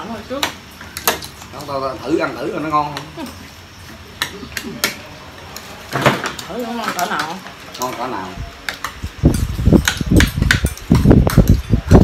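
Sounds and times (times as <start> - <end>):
voices talking: 0.0 - 10.2
utensils clicking on ceramic bowls: 6.4 - 12.0.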